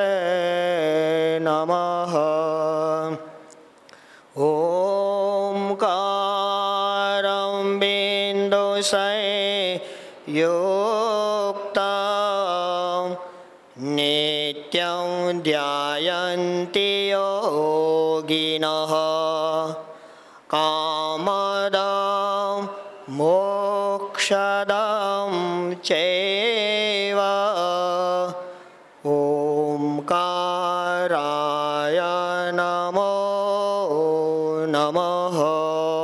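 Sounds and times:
man chanting: 0.0s - 3.4s, 4.3s - 36.0s.

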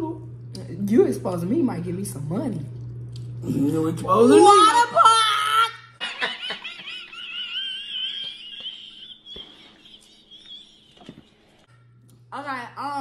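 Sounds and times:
high-pitched squealing laughter: 4.4s - 11.1s.

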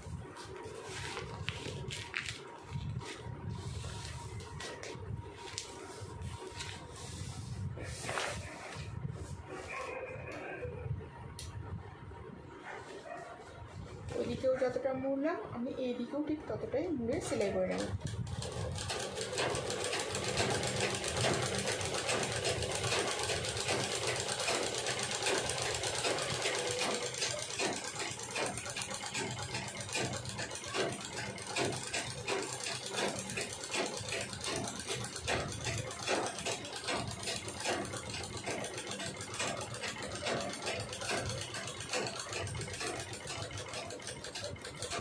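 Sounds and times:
sewing machine stitching: 17.2s - 45.0s.

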